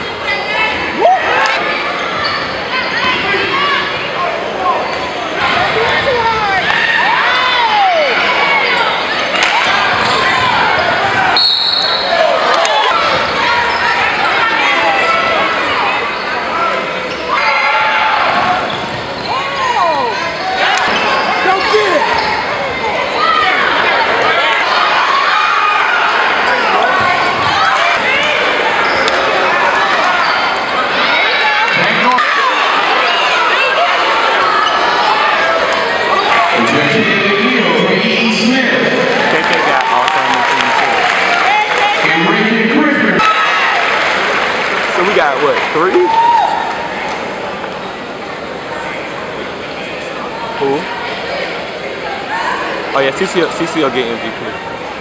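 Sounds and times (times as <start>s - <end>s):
voices of players and spectators: 0.0s - 55.0s
high whistle blast: 11.4s - 12.2s.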